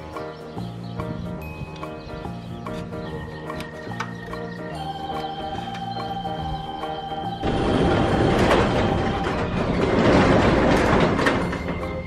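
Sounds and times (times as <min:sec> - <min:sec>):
roll-up garage door rising: 0:04.8 - 0:12.0.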